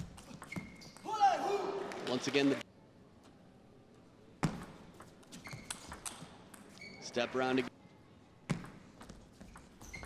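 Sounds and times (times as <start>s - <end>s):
high squeaks: 0.2s - 1.2s, 5.3s - 6.1s, 6.7s - 7.2s, 9.5s - 10.0s.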